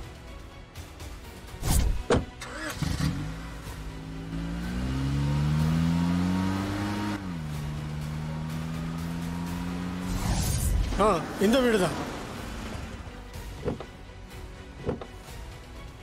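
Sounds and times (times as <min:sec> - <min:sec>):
car door shutting: 0:01.7 - 0:02.6, 0:13.6 - 0:13.9, 0:14.8 - 0:15.2
car engine accelerating: 0:02.4 - 0:13.8.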